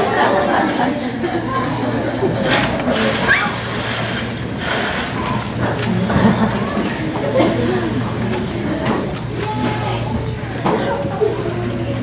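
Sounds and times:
murmur of audience: 0:00.0 - 0:12.0
rising voice squeal: 0:03.2 - 0:03.7.

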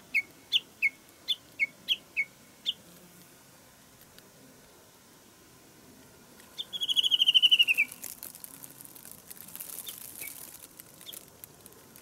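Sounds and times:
songbird singing: 0:00.0 - 0:03.0, 0:06.3 - 0:12.0.

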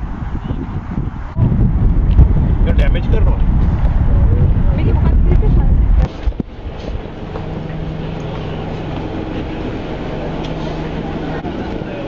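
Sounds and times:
vehicle cabin drone: 0:00.0 - 0:12.0
wind noise: 0:00.0 - 0:12.0
low steady hum: 0:01.3 - 0:12.0.

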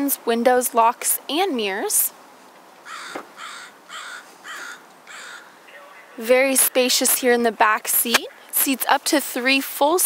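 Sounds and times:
bird harsh calls: 0:02.8 - 0:06.2.

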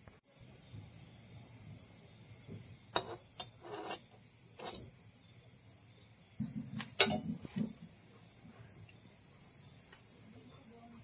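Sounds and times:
spoon scraping pot: 0:02.9 - 0:04.9.

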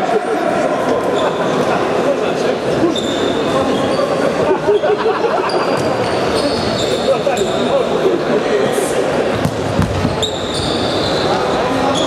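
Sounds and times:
players' voices: 0:00.0 - 0:12.0
ball bouncing on hard floor: 0:09.3 - 0:10.3.

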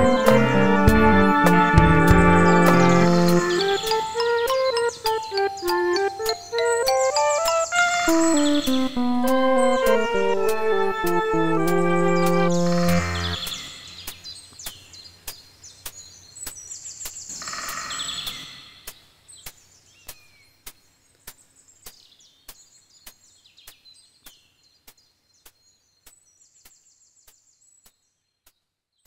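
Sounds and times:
synth music: 0:00.0 - 0:14.0
birds chirping and trilling: 0:00.0 - 0:20.6.

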